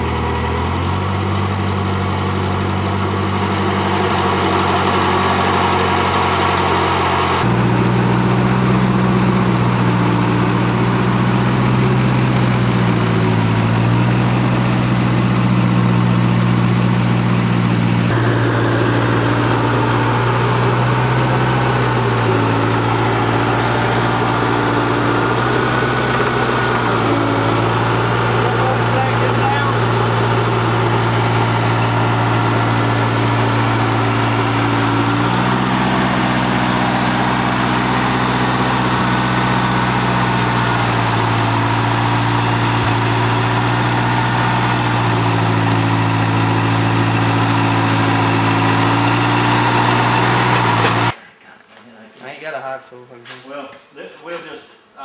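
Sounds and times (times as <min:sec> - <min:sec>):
loader engine running under load: 0:00.0 - 0:51.2.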